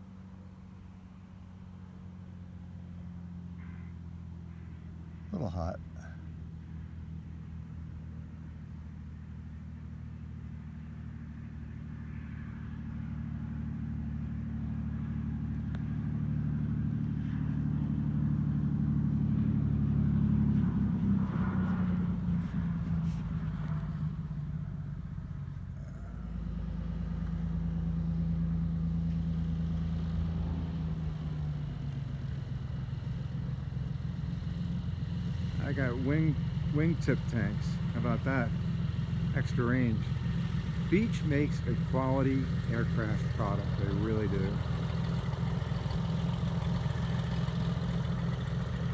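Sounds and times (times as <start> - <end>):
propeller plane engine droning: 0.0 - 48.9.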